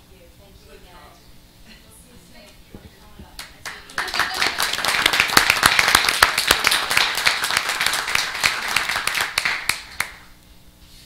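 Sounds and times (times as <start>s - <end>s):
audience applauding: 3.6s - 10.3s.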